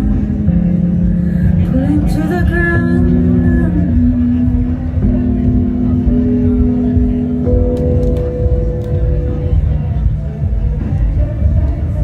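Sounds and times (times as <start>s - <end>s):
electric keyboard held notes: 2.9s - 10.8s.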